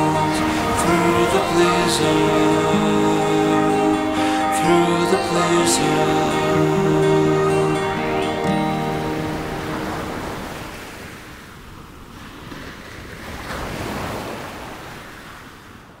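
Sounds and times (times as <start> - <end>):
waves washing onto sandy shore: 0.0 - 4.6, 6.3 - 16.0
music: 0.0 - 10.4.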